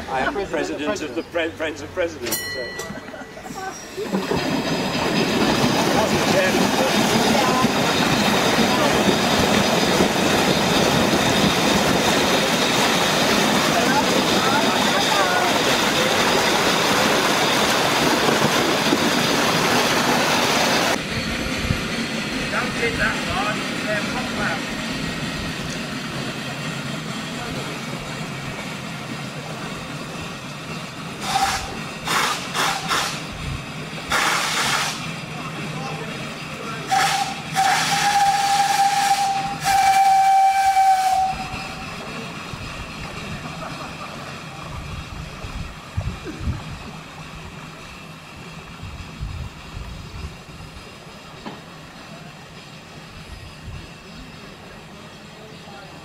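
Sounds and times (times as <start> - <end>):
hissing steam: 3.7 - 56.0
steam whistle toots and blast: 31.2 - 33.2, 36.9 - 41.9.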